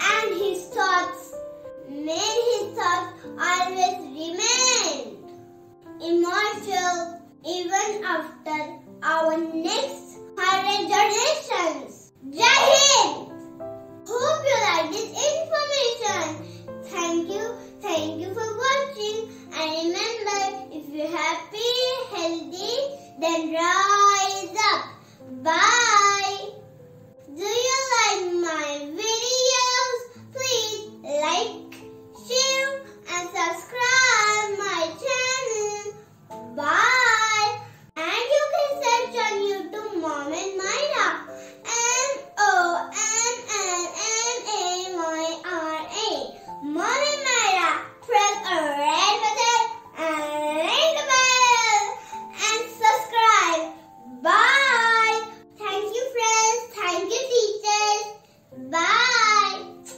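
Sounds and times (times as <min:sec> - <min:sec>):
girl singing: 0:41.7 - 0:59.9.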